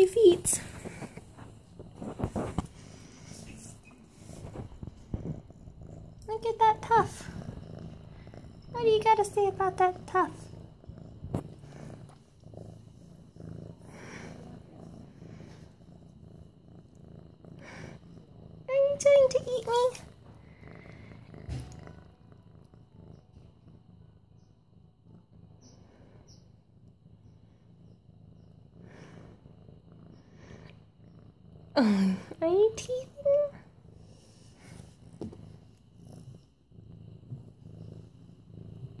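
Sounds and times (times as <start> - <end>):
kitten purring: 0.0 - 39.0.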